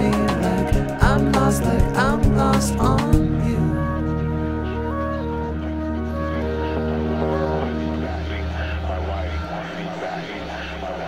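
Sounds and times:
low steady drone: 3.3 - 11.0
wavering warbling tone: 3.8 - 11.0.

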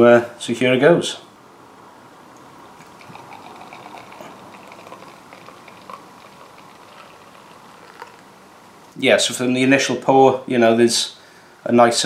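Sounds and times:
beer pouring into glass: 2.8 - 8.4
foam crackling: 2.9 - 8.4.

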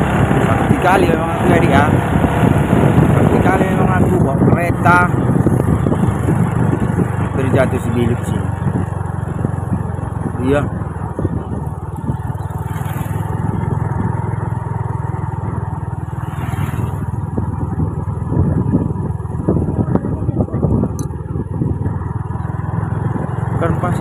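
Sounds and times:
motorcycle engine running: 0.0 - 24.0
road and wind noise: 0.0 - 24.0.

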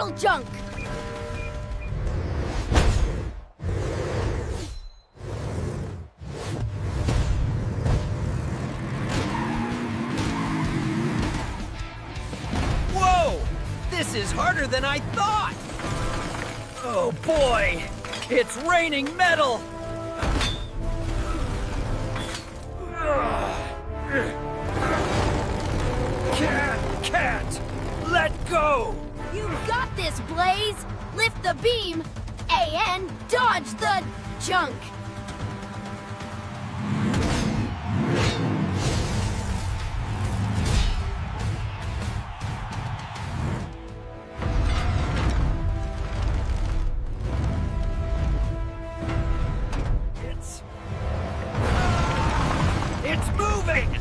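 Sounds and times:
background music: 0.0 - 2.6, 8.5 - 54.0.

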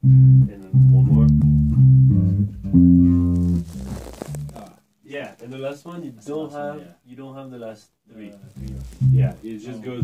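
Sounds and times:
electric bass plucked notes: 0.0 - 4.6, 8.6 - 9.4.

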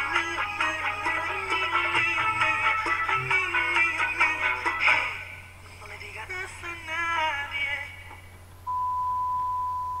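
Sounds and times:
man singing unaccompanied: 0.0 - 8.2.

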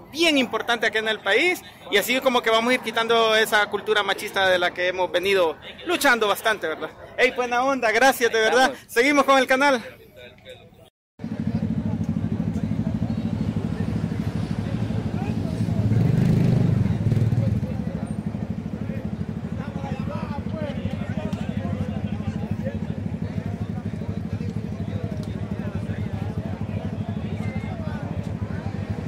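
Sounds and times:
people chatting: 0.0 - 29.0
motorcycle engine idling: 11.2 - 16.0, 16.9 - 29.0.

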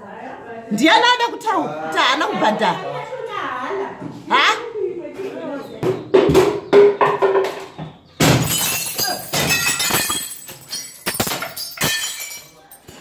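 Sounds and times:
window glass breaking: 8.2 - 12.6
broken glass clinking: 8.2 - 13.0.

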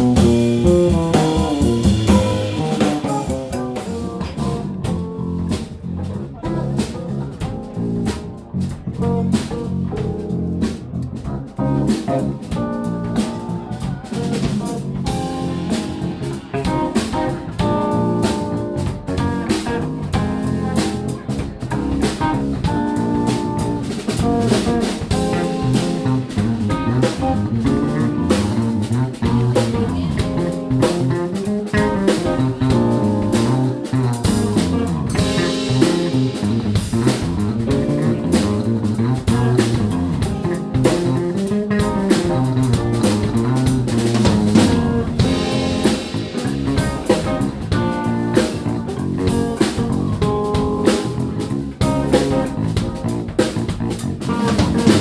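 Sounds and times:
bass guitar melodic lines: 0.0 - 55.0
drum kit and cymbals: 0.0 - 55.0
electric guitar: 0.0 - 55.0.

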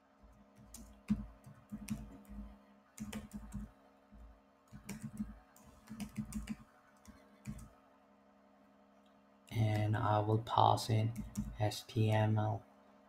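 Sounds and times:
computer keyboard typing: 0.6 - 3.7, 4.7 - 7.7, 11.1 - 12.2.

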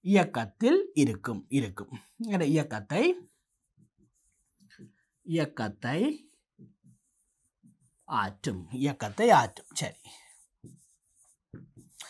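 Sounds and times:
stylus scratching on tablet screen: 2.9 - 5.6, 6.2 - 12.0.

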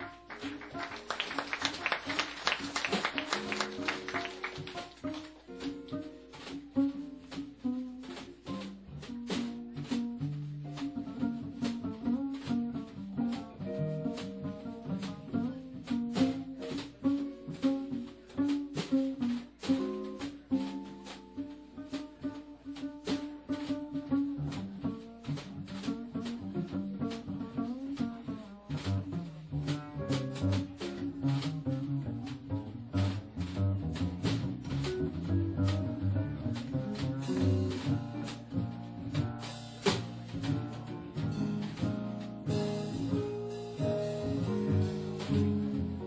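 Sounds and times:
bass line: 0.0 - 46.0
guitar: 0.0 - 46.0.

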